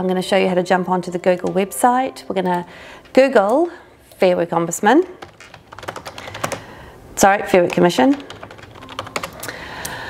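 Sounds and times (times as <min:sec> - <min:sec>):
typing on computer keyboard: 0:05.0 - 0:10.0.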